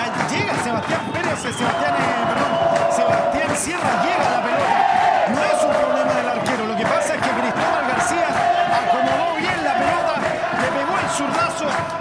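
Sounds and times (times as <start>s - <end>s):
crowd noise: 0.0s - 12.0s
crowd chanting: 1.7s - 12.0s.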